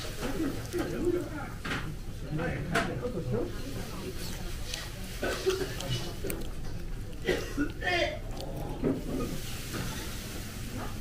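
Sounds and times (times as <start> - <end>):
low voices murmuring: 0.0 - 10.2.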